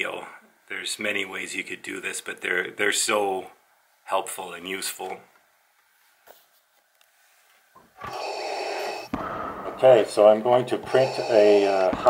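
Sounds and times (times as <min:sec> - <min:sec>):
breath through respirator mask: 0:08.0 - 0:09.8, 0:10.8 - 0:12.0.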